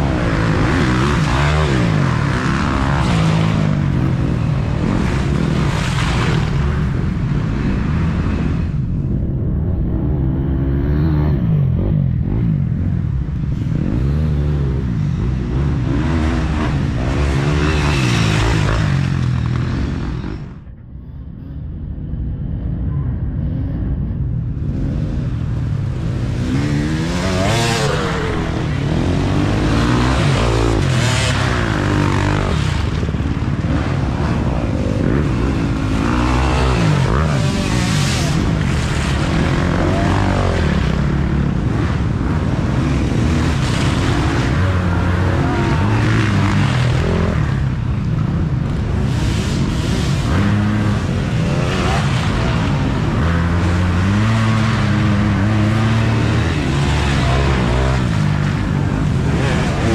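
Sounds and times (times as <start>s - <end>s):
dirt bike engines revving: 0.0s - 59.9s.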